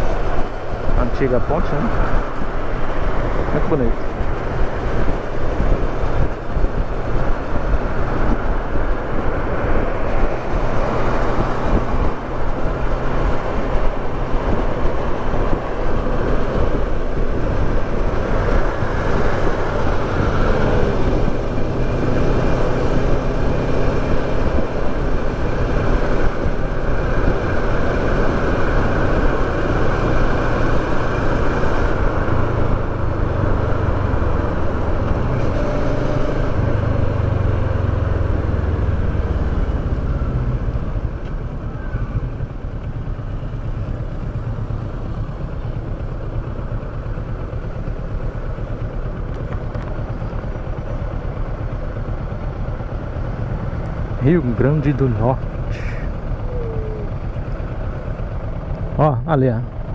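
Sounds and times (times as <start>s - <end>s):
wind rush: 0.0s - 37.5s
motorcycle engine: 0.0s - 59.9s.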